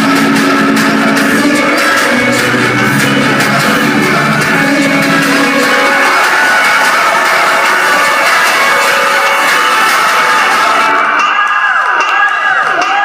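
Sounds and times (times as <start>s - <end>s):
swooping synth tones: 0.0s - 11.9s
crowd cheering: 0.0s - 13.0s
electronic trap music: 0.0s - 13.0s.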